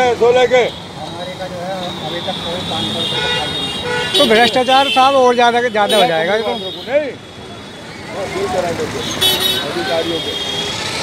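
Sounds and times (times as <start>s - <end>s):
road noise: 0.0s - 11.0s.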